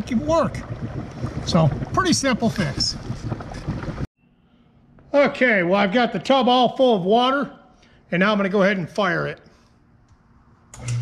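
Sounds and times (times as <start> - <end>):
rushing noise on microphone: 0.0 - 4.1.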